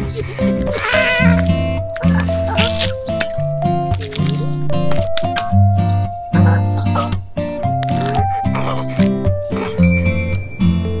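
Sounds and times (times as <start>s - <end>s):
playful cartoon music: 0.0s - 11.0s.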